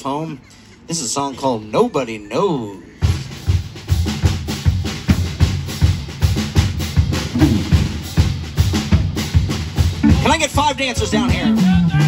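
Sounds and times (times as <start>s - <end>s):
bass drum and snare beat: 3.0s - 12.0s
live band playing: 3.0s - 12.0s.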